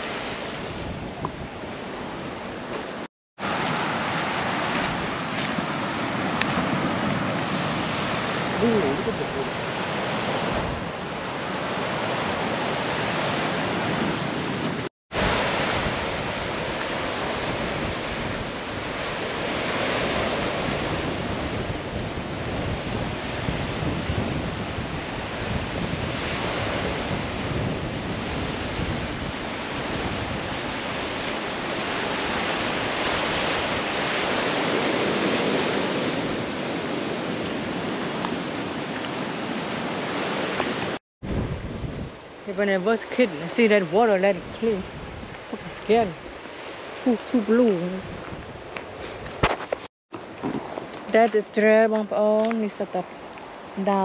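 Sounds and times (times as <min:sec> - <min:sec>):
surf washing over rocks: 0:00.0 - 0:51.3
wind buffeting microphone: 0:00.0 - 0:54.0.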